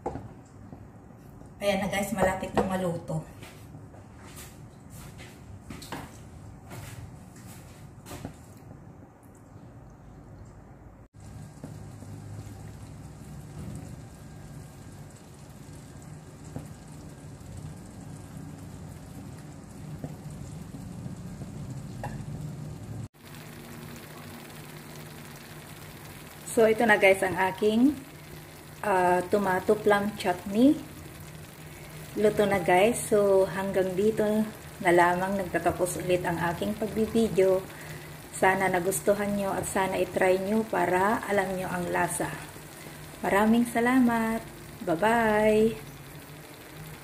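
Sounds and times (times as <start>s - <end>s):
chutney sizzling in a wok: 11.2s - 47.0s.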